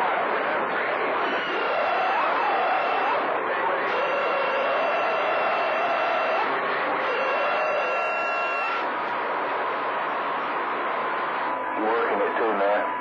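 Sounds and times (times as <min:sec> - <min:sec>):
radio static hiss: 0:00.0 - 0:13.0
steady radio whistles: 0:00.0 - 0:13.0
wavering tone: 0:07.0 - 0:08.9
faint garbled radio chatter: 0:11.7 - 0:13.0.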